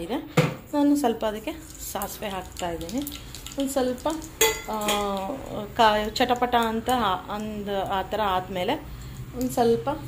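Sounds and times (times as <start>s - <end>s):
oil heating in a pan: 0.0s - 10.0s
woman speaking: 0.0s - 10.0s
metal clinking on a pan: 4.4s - 5.3s.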